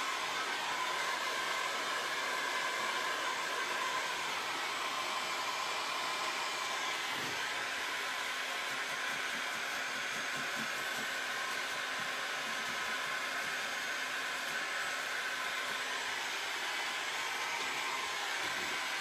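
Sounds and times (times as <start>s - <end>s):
electric dryer blowing with whine: 0.0s - 19.0s.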